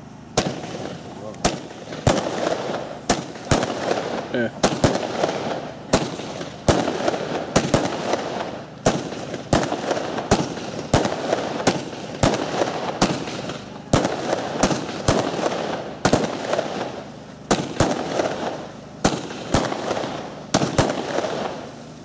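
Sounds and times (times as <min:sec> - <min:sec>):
fireworks battery reports: 0:00.0 - 0:22.0
hiss and crackle of fireworks: 0:00.0 - 0:22.0.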